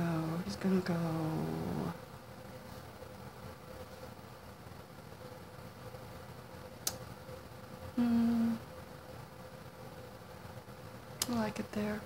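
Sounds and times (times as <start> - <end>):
thin steady hum: 0.0 - 12.0
woman humming: 7.9 - 8.6.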